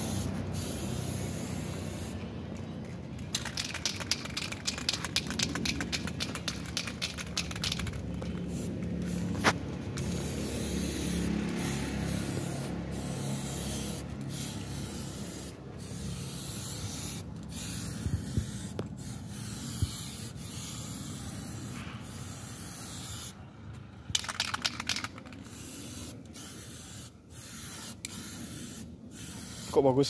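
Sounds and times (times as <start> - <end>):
aerosol spray can hissing: 0.0 - 2.2, 3.3 - 23.3, 24.2 - 29.8.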